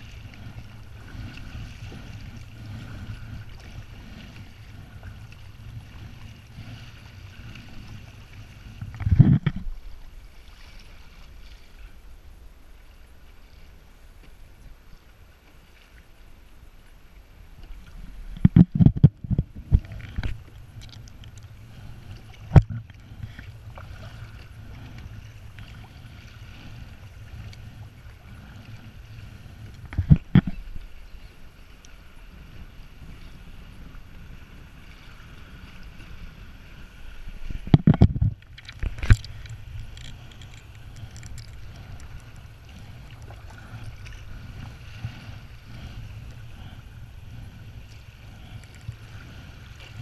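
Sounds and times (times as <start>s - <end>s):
water lapping against a kayak: 0.0s - 50.0s
steady low rumble: 17.3s - 50.0s.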